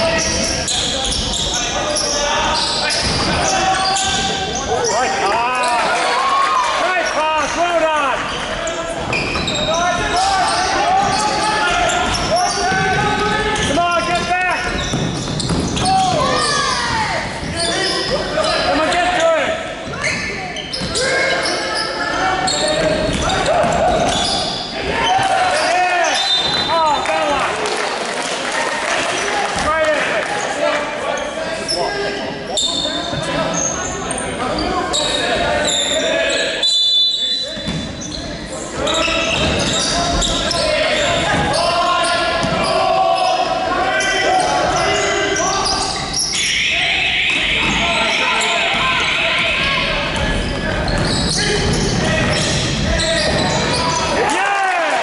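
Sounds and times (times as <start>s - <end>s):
sneakers squeaking: 0.0s - 27.1s, 30.4s - 54.3s
people calling out: 0.0s - 27.5s, 38.8s - 55.0s.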